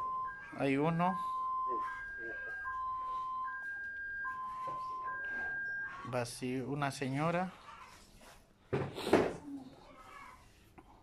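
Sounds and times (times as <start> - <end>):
two-tone electronic alarm: 0.0 - 6.4.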